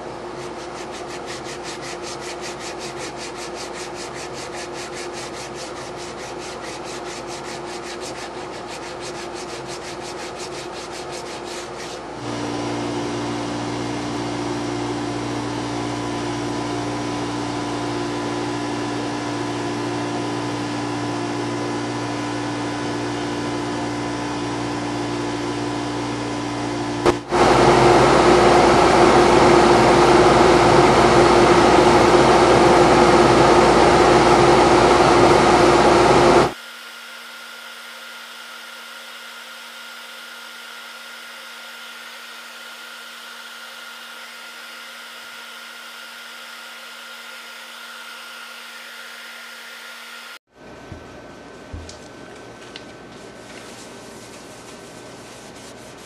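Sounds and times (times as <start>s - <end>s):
wood lathe humming: 0.0s - 50.4s.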